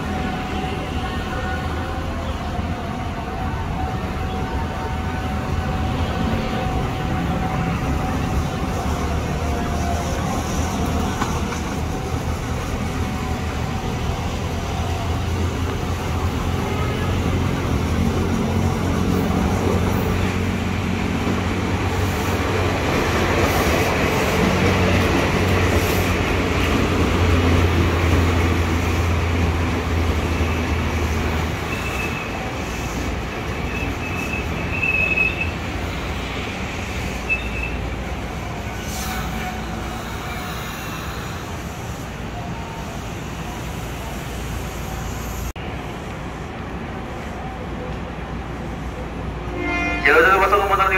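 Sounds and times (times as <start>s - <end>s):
train brake squeals: 31.6s - 35.6s, 37.1s - 37.8s, 38.7s - 42.1s
electric train braking: 38.7s - 42.1s.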